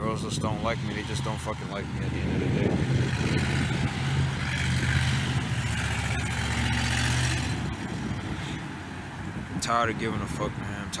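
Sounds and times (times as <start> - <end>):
low motor hum: 0.4 - 8.6.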